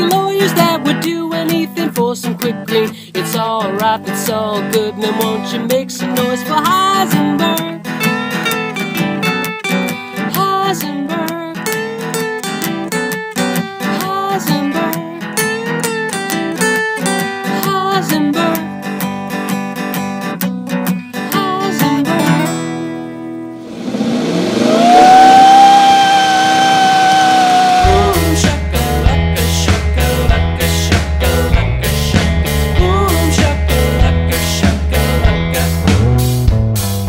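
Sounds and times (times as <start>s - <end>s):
acoustic guitar strumming: 0.0s - 36.9s
loud tone sliding up: 23.6s - 28.2s
rock music with heavy bass: 27.6s - 37.0s.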